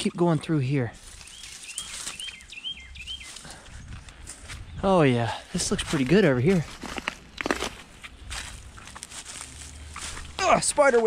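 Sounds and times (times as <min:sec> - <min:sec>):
footsteps in dry leaves: 0:01.0 - 0:04.7, 0:05.3 - 0:11.0.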